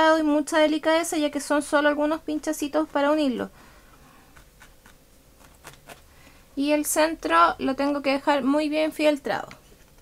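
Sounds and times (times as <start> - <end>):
felting needle poking into foam: 4.3 - 6.0.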